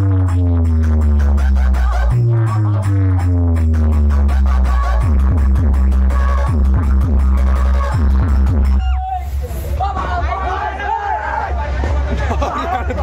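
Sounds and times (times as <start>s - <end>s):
electronic dance music heavy bass: 0.0s - 13.0s.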